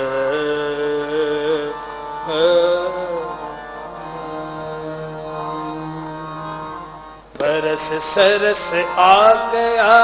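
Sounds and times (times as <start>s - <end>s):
man singing: 0.0s - 6.8s, 7.4s - 10.0s
harmonium holding notes: 0.0s - 10.0s.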